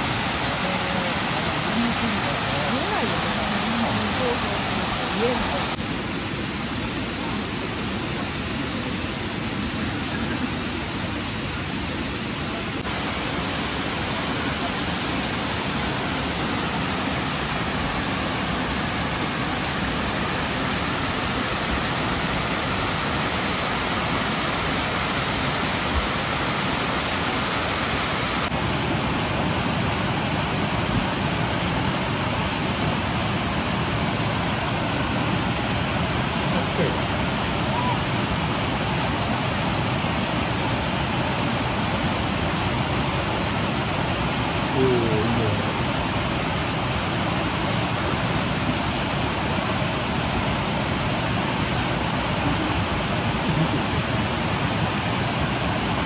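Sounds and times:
water rushing over rocks: 0.0 - 56.0.

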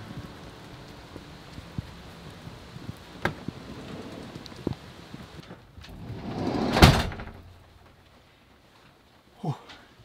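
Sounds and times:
rain: 0.0 - 10.0
van door sliding shut: 5.9 - 7.5.

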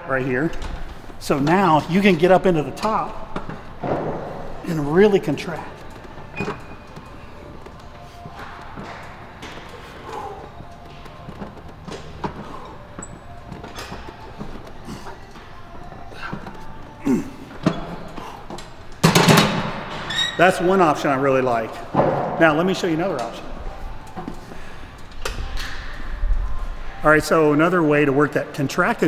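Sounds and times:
faint background music: 0.0 - 29.0
gym room tone: 0.0 - 29.0.

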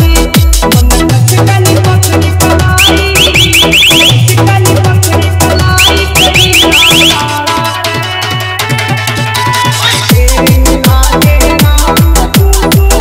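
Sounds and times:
electronic dance remix with heavy bass: 0.0 - 13.0
quick rising whistle chirps: 2.8 - 4.2, 5.8 - 7.2.

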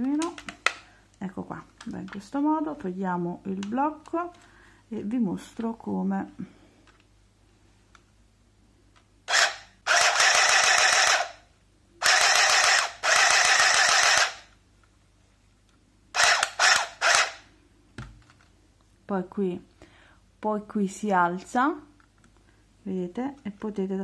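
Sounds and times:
handheld sewing machine stitching: 9.3 - 11.4, 12.0 - 14.5, 16.2 - 17.4.

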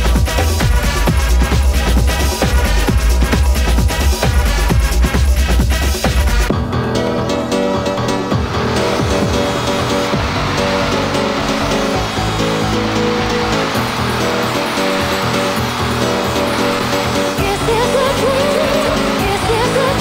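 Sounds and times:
held synth chords: 0.0 - 20.0
noise wash: 7.2 - 20.0.

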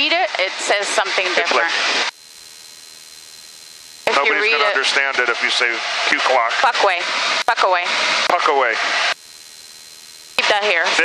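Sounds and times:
electronic hiss with high tone: 0.0 - 11.0.

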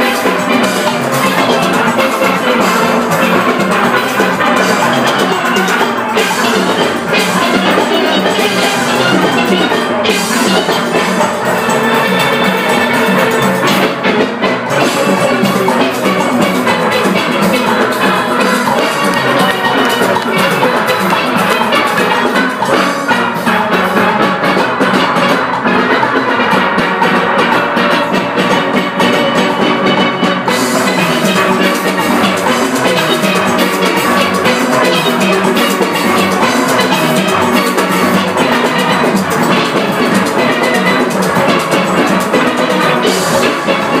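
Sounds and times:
drum and percussion rhythm: 0.0 - 44.0
steel pan orchestra playing: 0.0 - 44.0.

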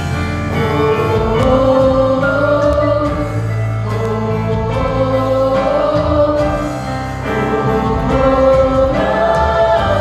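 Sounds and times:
bass guitar: 0.0 - 10.0
drums: 0.0 - 10.0
group of singers: 0.0 - 10.0
keyboard: 0.0 - 10.0.

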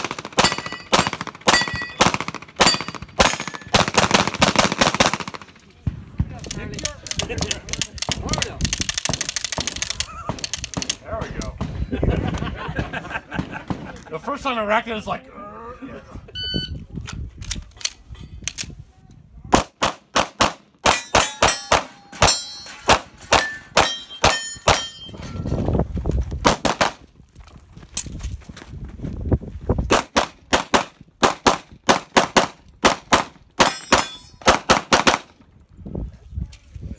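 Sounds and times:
pistol shots: 0.0 - 5.6, 19.6 - 24.8, 29.9 - 35.3
metallic ring from shots: 0.4 - 3.7, 20.9 - 25.6
shot timer beep: 16.4 - 16.8.

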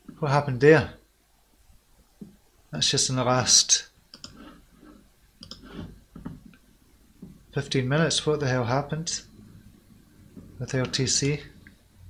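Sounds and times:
computer mouse clicks: 4.1 - 4.6, 5.4 - 6.6.

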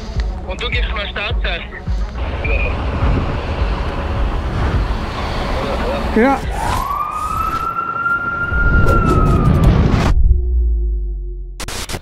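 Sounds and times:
cars rumbling on busy street: 0.0 - 9.6.

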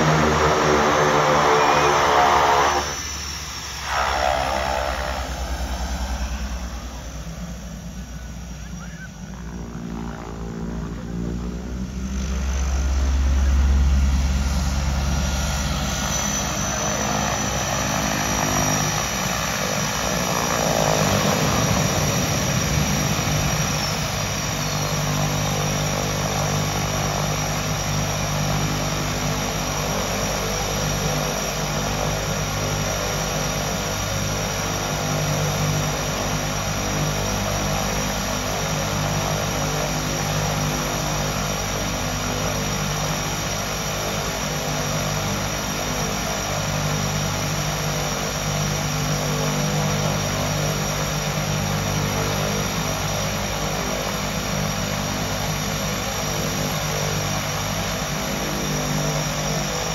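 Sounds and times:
high turbine whine: 0.0 - 59.9
propeller drone: 0.0 - 59.9.

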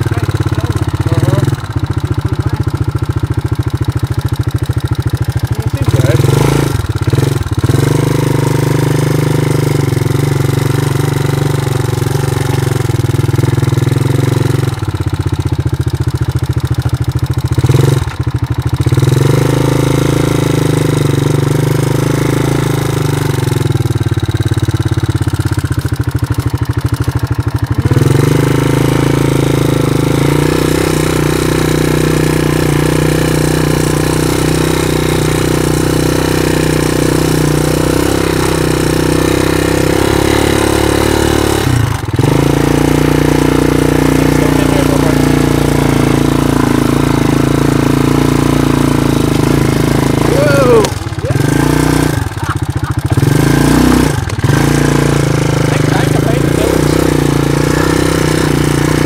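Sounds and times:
quad bike engine running: 0.0 - 59.0.

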